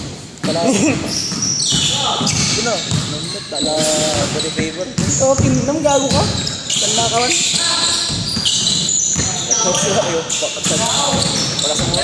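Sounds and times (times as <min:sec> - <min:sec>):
basketball bouncing on wooden floor: 0:00.4 - 0:12.0.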